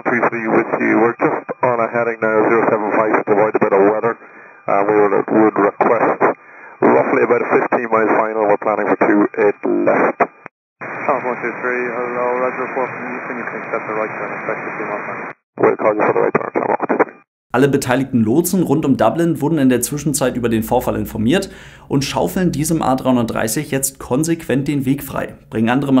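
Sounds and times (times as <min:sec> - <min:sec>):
pilot speaking over radio: 0:00.0 - 0:10.1, 0:11.0 - 0:17.0
radio hiss: 0:00.0 - 0:17.3.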